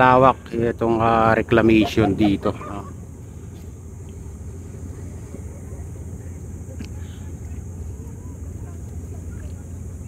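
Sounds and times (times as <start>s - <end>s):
distant engines rumbling: 0.0s - 10.0s.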